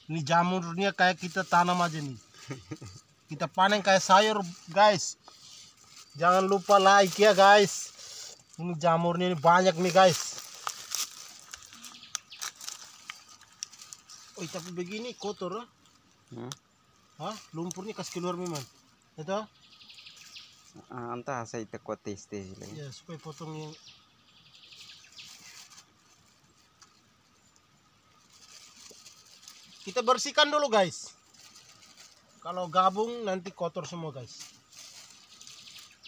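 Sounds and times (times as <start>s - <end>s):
soft high rustling: 9.4s - 16.0s
plastic bag crinkling: 9.6s - 15.1s.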